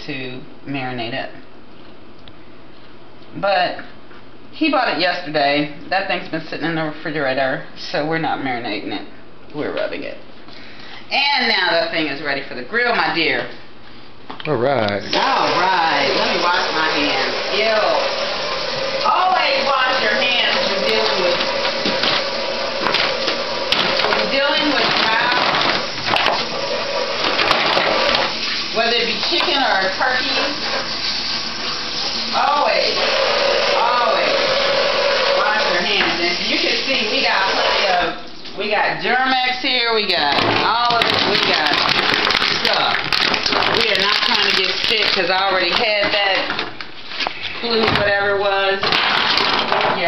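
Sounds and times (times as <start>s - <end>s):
tap water running: 15.1s - 38.9s, 40.0s - 46.9s.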